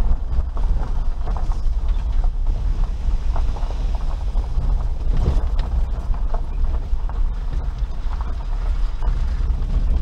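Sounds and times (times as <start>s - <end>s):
low vehicle rumble: 0.0s - 10.0s
rattles and creaks of car interior: 0.0s - 10.0s.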